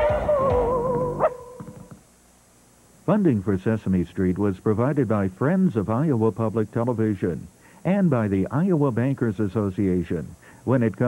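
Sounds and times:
rising cartoon yip: 0:00.0 - 0:01.9.

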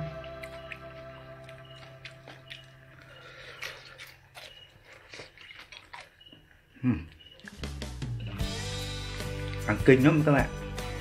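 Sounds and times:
person chewing with gritty crunching: 0:00.0 - 0:09.8.

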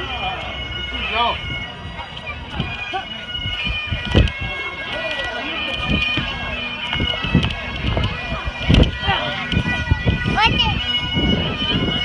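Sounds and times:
bagpipes playing held notes: 0:00.0 - 0:12.0.

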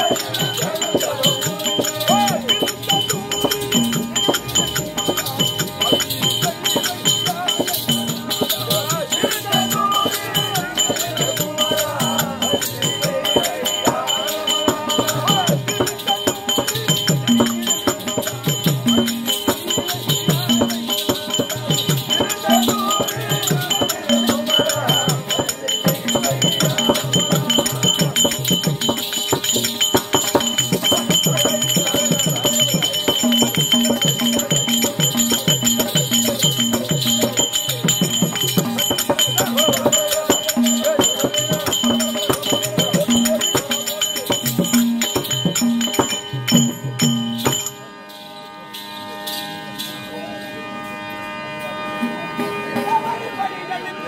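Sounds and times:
drum strokes: 0:00.0 - 0:47.9
jingling rattle: 0:00.0 - 0:50.1
high metallic ringing: 0:00.0 - 0:51.8.

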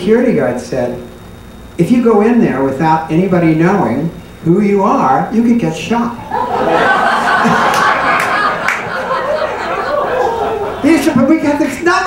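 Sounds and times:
man laughing: 0:06.2 - 0:11.4
people chattering and laughing: 0:06.2 - 0:11.4.

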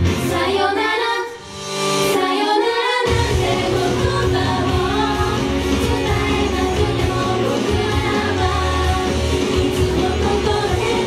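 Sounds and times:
female vocal group singing: 0:00.2 - 0:01.4, 0:02.0 - 0:11.0
pop-rock backing track: 0:03.1 - 0:11.0.

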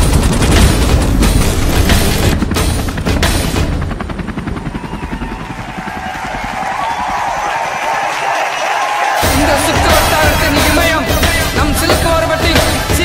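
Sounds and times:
background music: 0:00.0 - 0:13.0
helicopter rotor blades chopping: 0:00.0 - 0:13.0.

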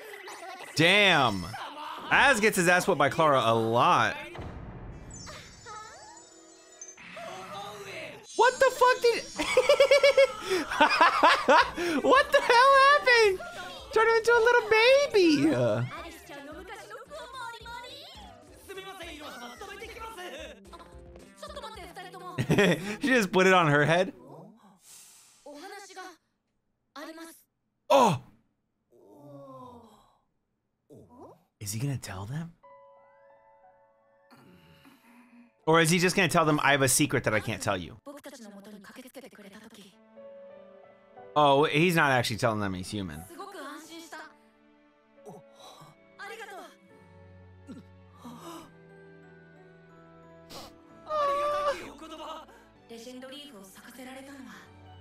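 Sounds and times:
background music: 0:00.0 - 0:24.4, 0:31.6 - 0:38.0, 0:39.4 - 0:55.0
breathy sigh: 0:10.3 - 0:10.7, 0:11.7 - 0:12.1, 0:47.7 - 0:48.8
person speaking: 0:11.8 - 0:15.9.

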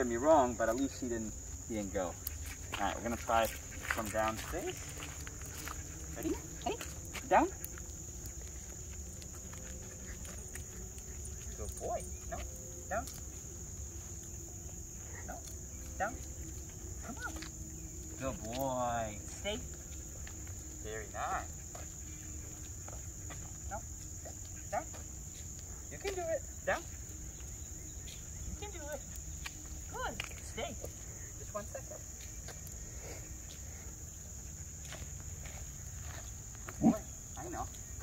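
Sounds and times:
insects droning: 0:00.0 - 0:38.0.

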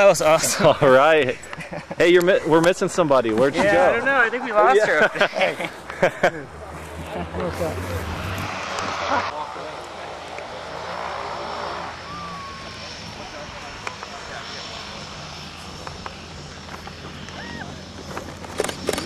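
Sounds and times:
propeller aircraft drone: 0:00.0 - 0:19.0.

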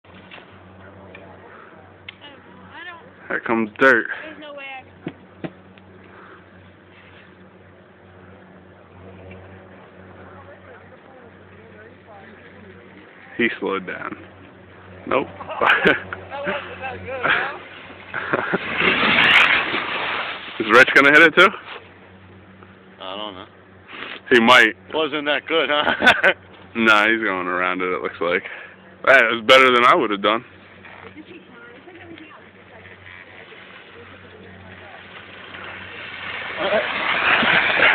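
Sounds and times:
faint outdoor noise: 0:00.0 - 0:37.9
low mechanical hum: 0:00.0 - 0:37.9
faint voices: 0:00.7 - 0:05.0, 0:30.8 - 0:37.4.

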